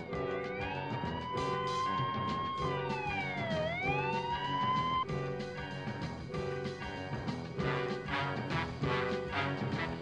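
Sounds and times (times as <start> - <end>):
wailing siren: 0.0 - 5.1
background music: 0.0 - 10.0.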